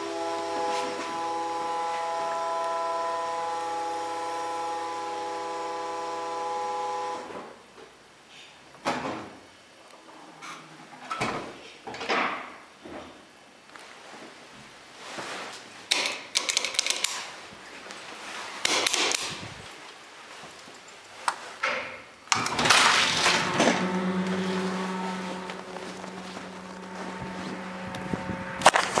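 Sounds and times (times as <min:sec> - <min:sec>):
elevator machinery humming: 0:00.0 - 0:07.3, 0:22.4 - 0:29.0.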